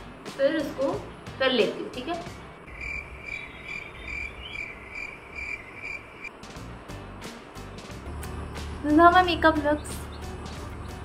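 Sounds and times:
high-pitched chirp: 2.7s - 6.3s.

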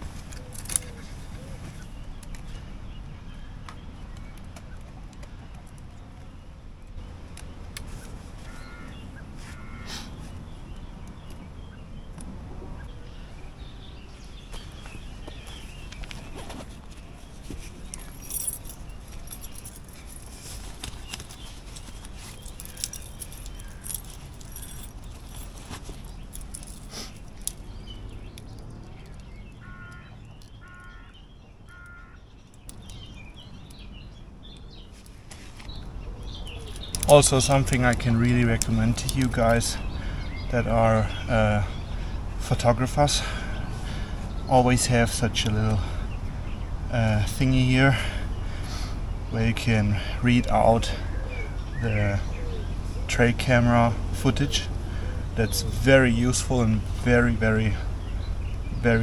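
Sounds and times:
birds calling: 0.0s - 59.0s
camera gear clicks and rattles: 14.9s - 30.9s.

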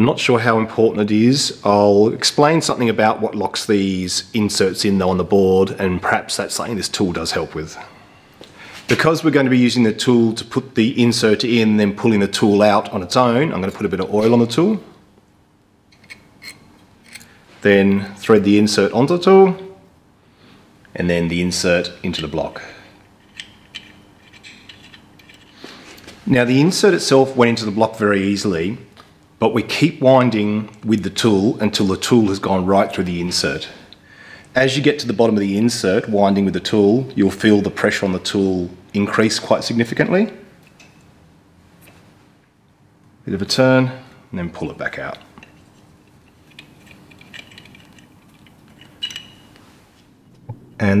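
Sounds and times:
small metallic clicks and scrapes: 15.9s - 17.4s, 23.0s - 25.7s, 45.1s - 49.7s.

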